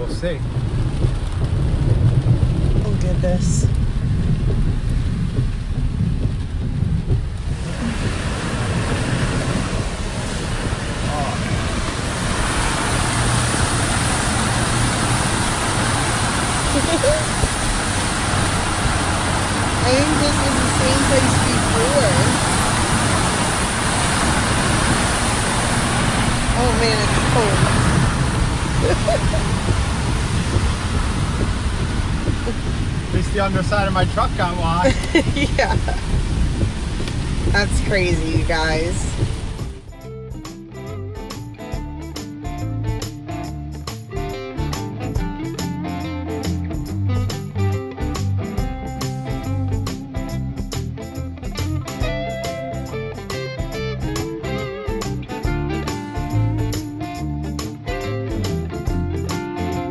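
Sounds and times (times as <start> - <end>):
heavy rain: 0.0 - 39.9
truck driving through floodwater: 0.0 - 39.9.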